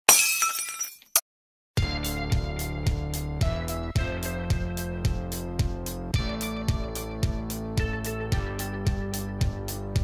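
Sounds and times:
glass shattering crash: 0.1s - 1.2s
music with a beat: 1.8s - 10.0s.

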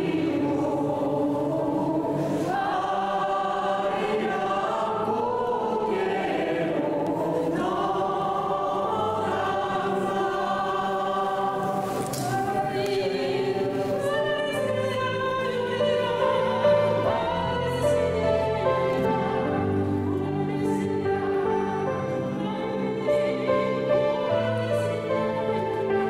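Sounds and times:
choir singing a slow hymn: 0.0s - 26.0s.

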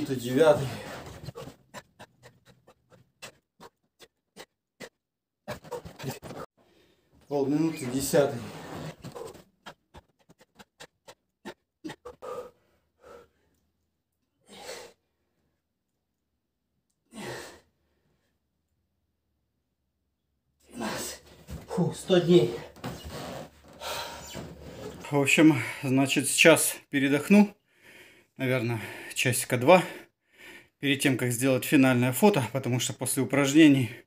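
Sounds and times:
man breathing with effort: 5.8s - 7.2s, 11.0s - 13.7s, 14.4s - 15.4s, 17.1s - 18.3s, 23.6s - 25.0s, 27.6s - 29.1s, 29.9s - 30.8s.

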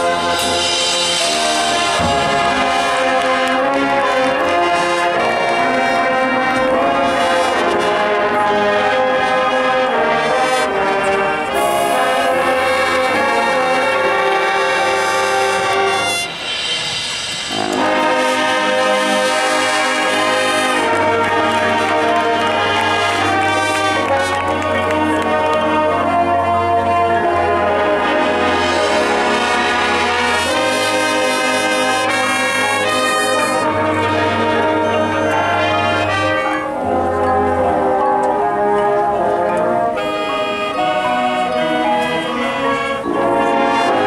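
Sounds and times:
brass sustained chords: 0.0s - 44.0s
marching band playing: 0.0s - 44.0s.

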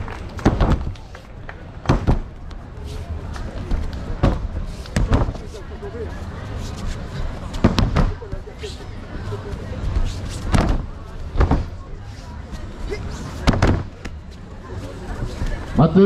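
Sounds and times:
heavy thuds on foam mats: 1.8s - 2.3s, 10.5s - 11.8s, 13.4s - 13.9s.

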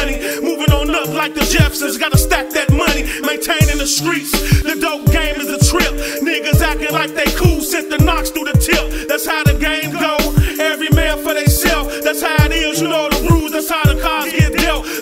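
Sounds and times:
deep bass kicks: 0.0s - 14.9s
rapping over a beat: 0.0s - 15.0s.

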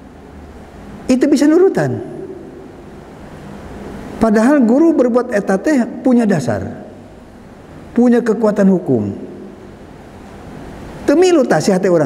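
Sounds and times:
electric fan whooshing: 0.0s - 12.0s
faint steady hum: 0.0s - 12.0s.

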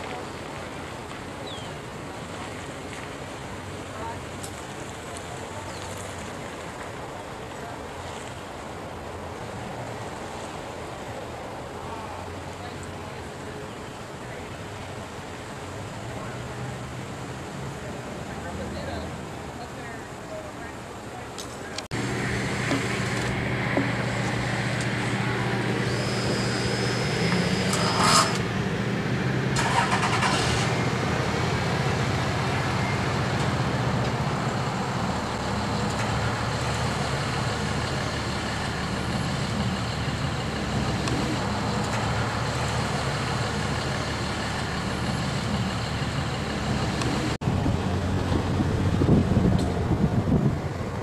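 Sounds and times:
motor vehicle engine hum: 21.6s - 51.0s.

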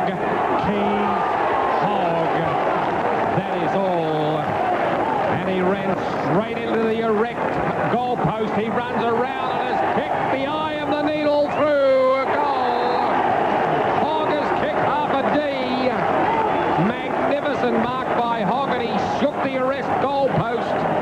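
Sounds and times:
man commentating on radio: 0.0s - 2.6s, 3.2s - 4.6s, 5.2s - 13.2s, 13.9s - 21.0s
crowd noise: 0.0s - 21.0s.

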